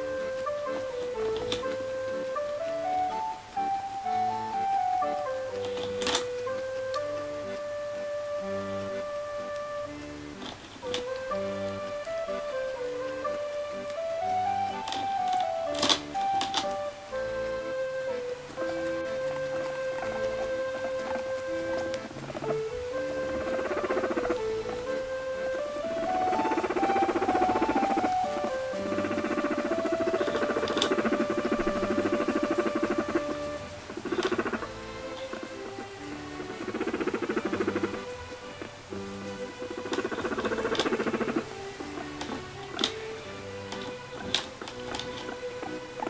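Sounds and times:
background music with simple melody: 0:00.0 - 0:46.0
guinea pig purring: 0:15.1 - 0:46.0.

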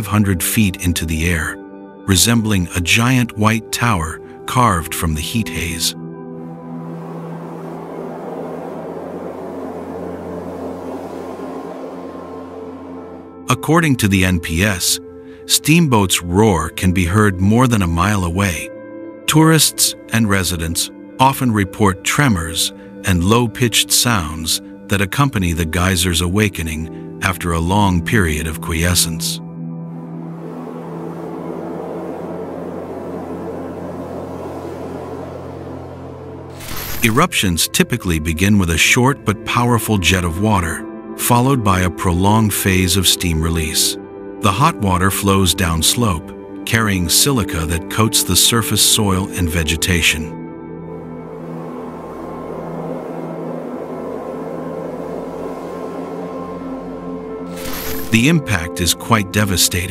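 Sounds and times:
ambient music drone: 0:00.0 - 0:59.9
low steady hum: 0:05.1 - 0:15.3, 0:50.8 - 0:58.7.

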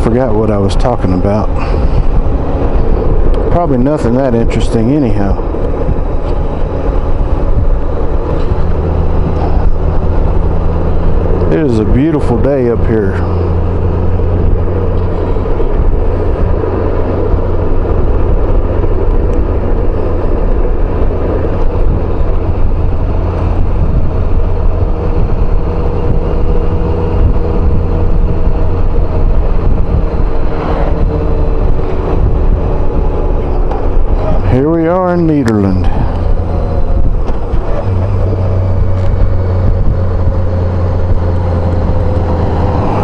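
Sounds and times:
motorcycle engine humming: 0:00.0 - 0:43.0
road noise: 0:00.0 - 0:43.0
wind rush: 0:00.0 - 0:43.0.

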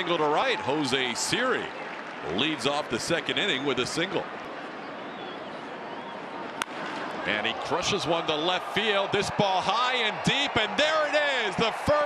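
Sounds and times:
ballpark crowd noise: 0:00.0 - 0:12.0
wooden bat cracking baseball: 0:06.5 - 0:07.1.

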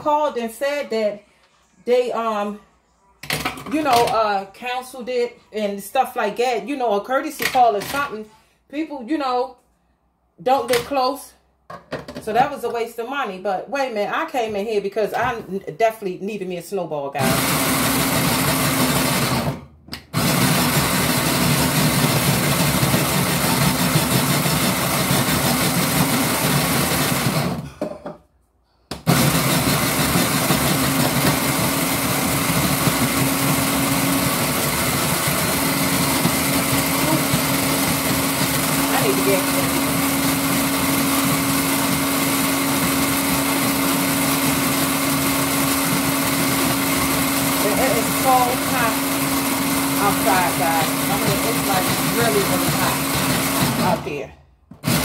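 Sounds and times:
ice shaving machine whirring: 0:17.2 - 0:27.6, 0:29.0 - 0:54.2, 0:54.8 - 0:55.0.

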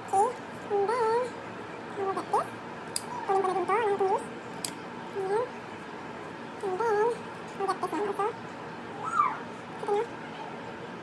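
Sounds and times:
dog whining: 0:03.0 - 0:03.6, 0:08.9 - 0:10.6.

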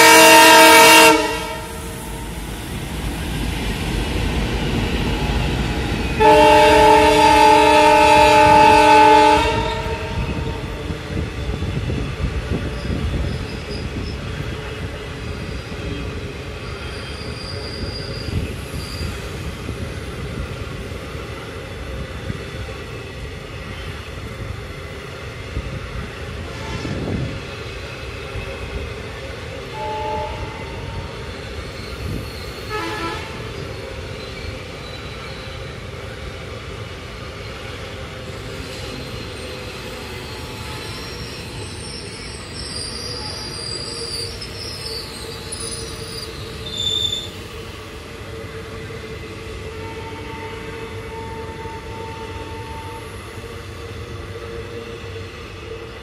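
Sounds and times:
multi-tone air horn: 0:00.0 - 0:01.8, 0:06.2 - 0:10.5, 0:29.7 - 0:31.0, 0:32.7 - 0:33.5, 0:49.8 - 0:53.1
diesel locomotive engines: 0:00.0 - 0:56.0
train wheels rumbling on track: 0:00.0 - 0:56.0.

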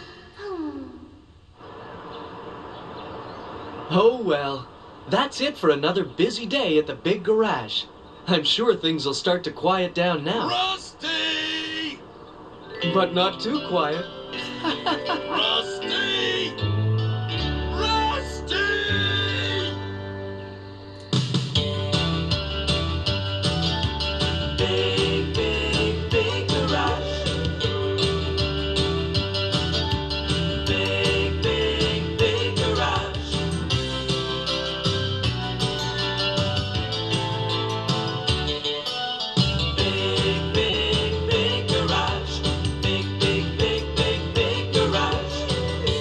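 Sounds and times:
person sighing: 0:00.0 - 0:01.3
held music notes: 0:12.6 - 0:46.0
music with regular beat: 0:21.1 - 0:46.0.

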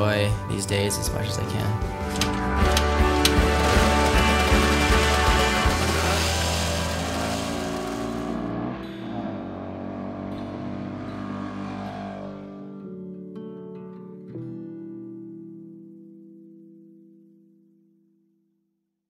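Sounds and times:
background music: 0:00.0 - 0:16.9
motorcycle riding off: 0:02.6 - 0:12.7.

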